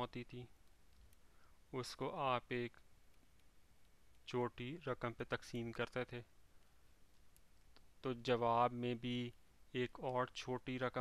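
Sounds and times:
faint clicks: 0.3s - 1.6s, 2.6s - 8.3s.

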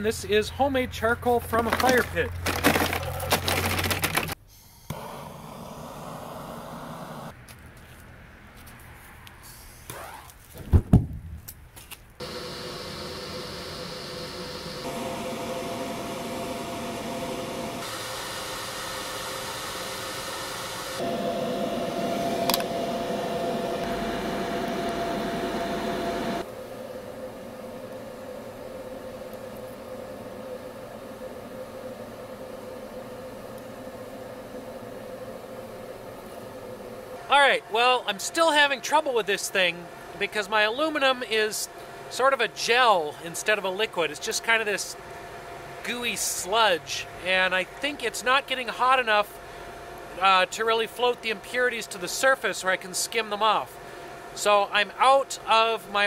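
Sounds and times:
charcoal clattering: 1.6s - 4.3s
air blower humming: 1.6s - 7.3s, 12.2s - 54.6s
loud thump: 10.6s - 11.3s.

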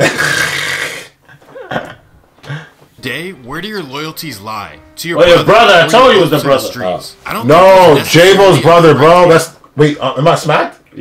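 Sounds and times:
men laughing: 1.3s - 3.0s.

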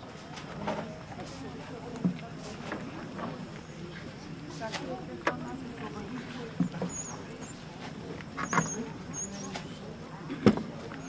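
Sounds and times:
faint voices outdoors: 0.0s - 11.0s.

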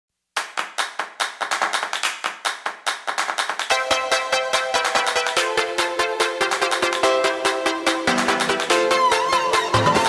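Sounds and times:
rhythmic hand claps: 0.3s - 10.0s.

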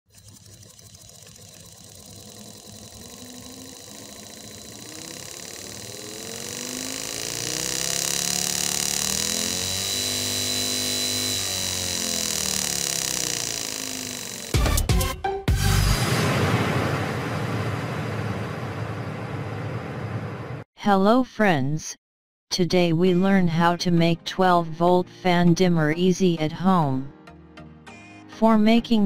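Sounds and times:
small motor fan whine: 0.1s - 14.8s, 17.3s - 20.6s.

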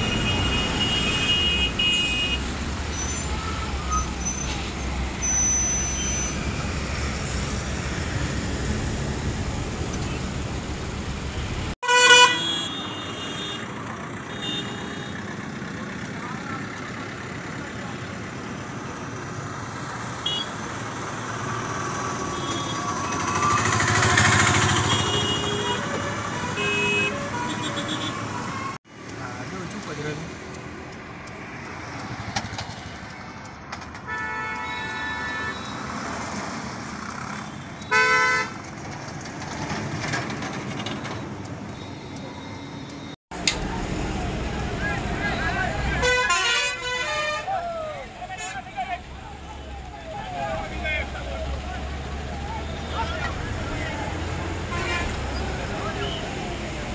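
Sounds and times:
car horns honking: 0.0s - 4.4s, 11.8s - 15.2s, 20.2s - 20.8s, 22.2s - 28.8s, 34.0s - 36.2s, 37.3s - 38.7s, 45.3s - 47.6s, 54.7s - 56.3s
road traffic passing: 0.0s - 56.9s.

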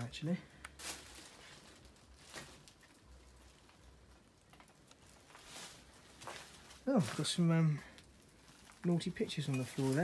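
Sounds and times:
faint footsteps on leaf litter: 0.0s - 10.0s.

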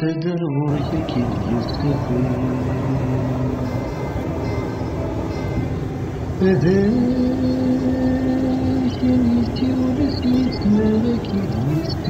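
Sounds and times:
car engine and road rumble: 0.1s - 12.0s.

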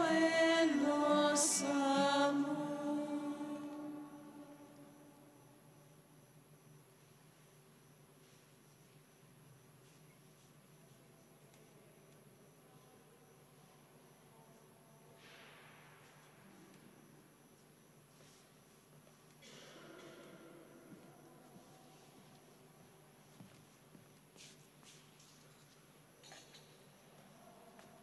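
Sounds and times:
person singing a chant: 0.0s - 5.4s.

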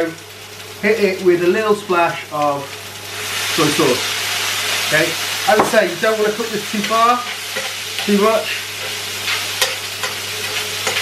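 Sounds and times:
vegetables sizzling in frying pan: 0.0s - 11.0s
spoon scraping against pan: 6.8s - 11.0s.

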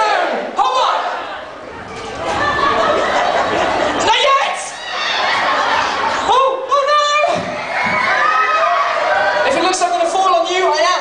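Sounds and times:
audience shouting and cheering: 0.0s - 11.0s
children's voices: 0.8s - 11.0s.

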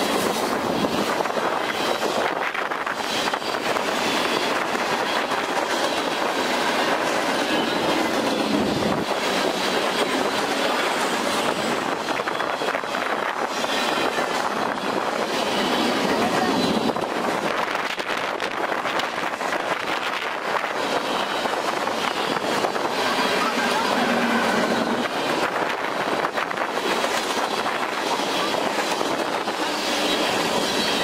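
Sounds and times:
freight train cars rolling: 0.0s - 31.0s.

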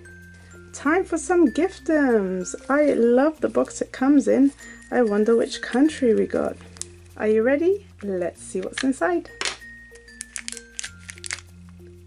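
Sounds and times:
soft background music: 0.0s - 12.0s
plastic wrapper crinkling: 4.5s - 7.2s, 8.6s - 11.8s.

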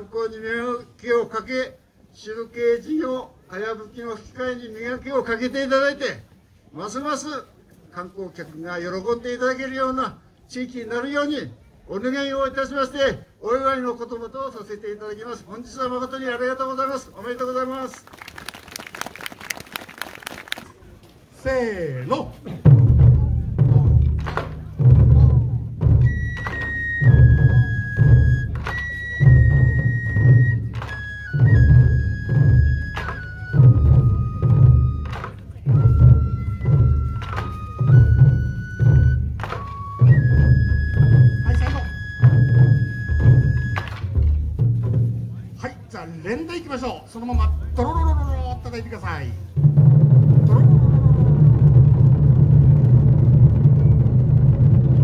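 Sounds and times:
scattered applause: 17.9s - 20.8s
deep drum strokes: 22.4s - 45.9s, 47.2s - 55.0s.

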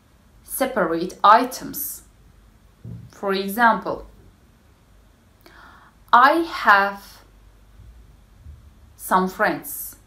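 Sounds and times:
faint low hum: 0.0s - 10.0s
short intake of breath: 5.4s - 6.0s.

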